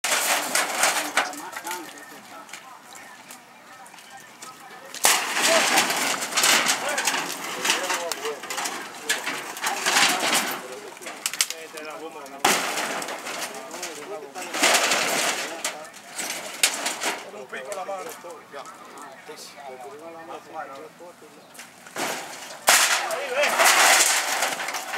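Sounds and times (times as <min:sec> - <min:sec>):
dry brush crackling and snapping: 0:00.0 - 0:24.9
faint voices: 0:00.0 - 0:24.9.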